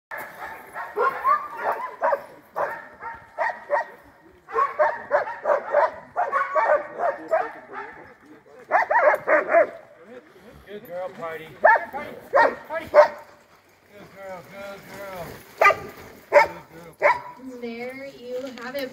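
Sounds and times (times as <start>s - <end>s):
sled dogs barking and yipping: 0.1s - 18.9s.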